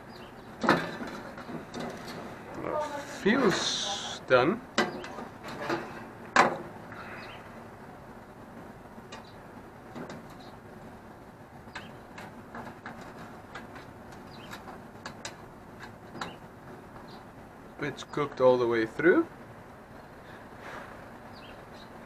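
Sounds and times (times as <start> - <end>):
metal skewers scraping a plate: 4.8 - 6.2.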